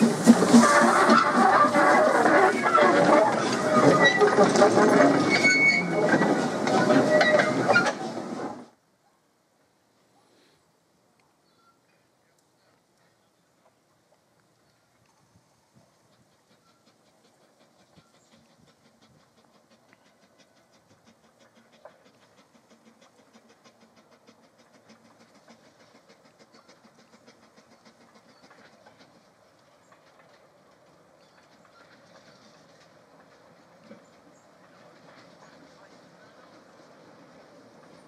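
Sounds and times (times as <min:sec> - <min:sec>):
steam locomotive chuffing: 0:00.0 - 0:08.8, 0:15.2 - 0:38.0.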